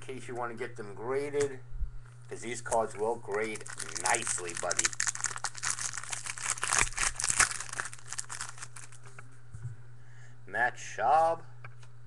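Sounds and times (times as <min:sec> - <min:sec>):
steady low hum: 0:00.0 - 0:12.0
foil wrapper crinkling: 0:02.7 - 0:09.2.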